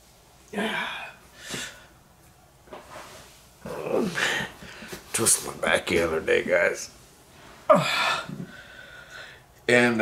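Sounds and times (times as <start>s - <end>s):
man groaning with strain: 3.6s - 4.6s, 7.7s - 8.6s.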